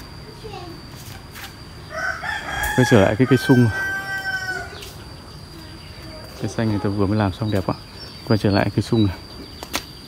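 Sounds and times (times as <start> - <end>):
steady high whine: 0.0 - 10.0
rooster crowing: 1.8 - 5.0.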